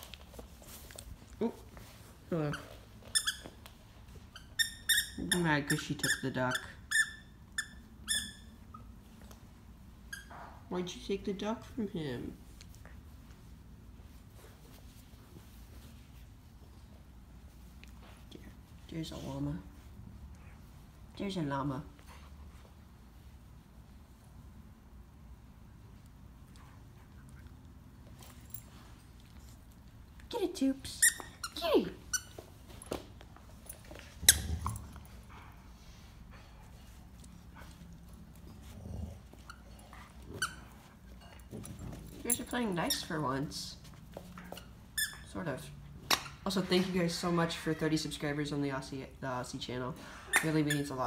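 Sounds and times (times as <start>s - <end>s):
dog toy squeaking: 4.3s - 8.8s, 31.0s - 32.4s, 45.0s - 45.3s.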